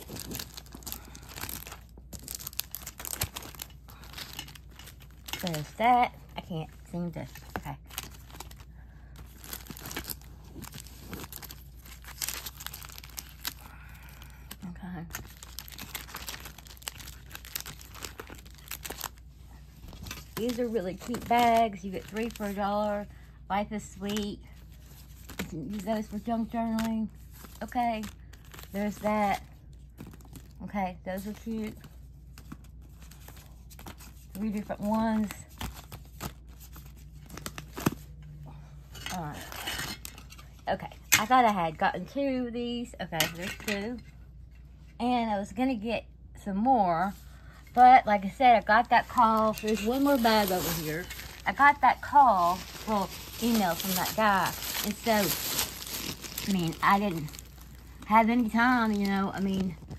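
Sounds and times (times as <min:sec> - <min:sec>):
sticker packs crinkling and rustling: 0:00.0 - 0:23.1, 0:23.9 - 0:38.2, 0:48.5 - 0:59.9
faint steady hum: 0:00.0 - 0:59.9.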